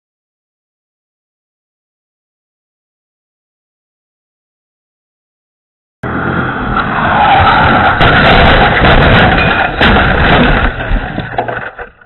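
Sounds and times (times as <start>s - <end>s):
sharp bangs: 6.0s - 11.9s
fire rushing: 6.1s - 11.4s.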